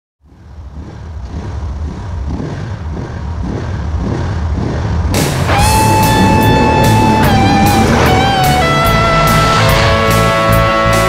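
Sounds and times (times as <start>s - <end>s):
motorcycle engine rumbling: 0.2s - 11.0s.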